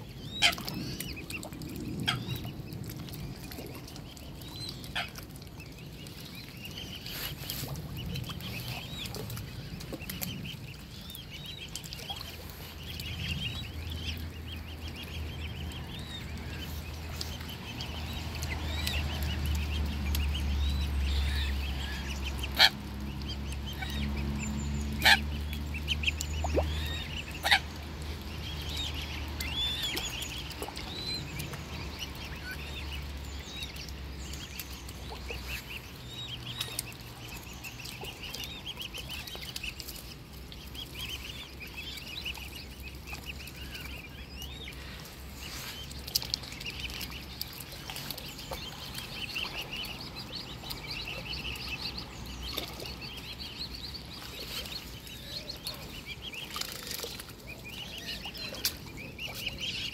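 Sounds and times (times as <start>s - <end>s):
cygnets peeping: 0.0s - 59.9s.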